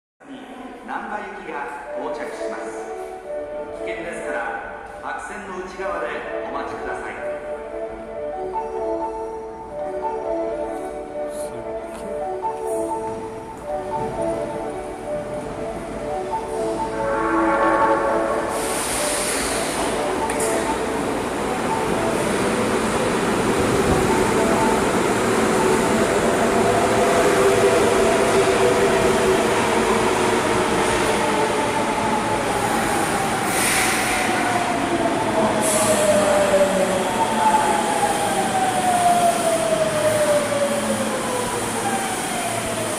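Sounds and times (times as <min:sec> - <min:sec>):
subway train arriving: 0:00.2 - 0:42.9
platform arrival melody: 0:06.2 - 0:33.0.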